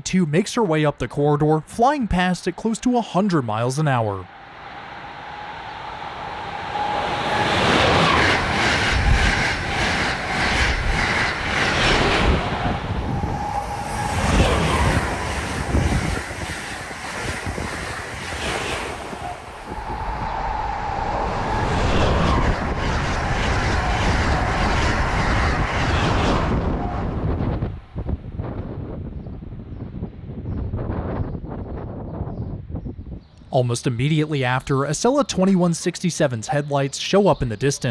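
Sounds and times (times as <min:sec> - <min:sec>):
train passing: 0:01.7 - 0:29.0, 0:33.6 - 0:37.9
high thin whine: 0:02.4 - 0:27.7.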